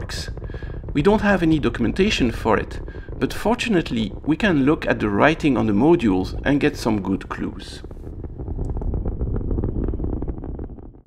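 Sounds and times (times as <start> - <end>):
rocket engines rumbling with crackle: 0.0 - 11.0.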